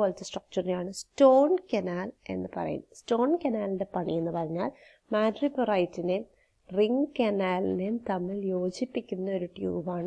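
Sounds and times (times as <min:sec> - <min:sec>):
woman speaking: 0:00.0 - 0:10.0.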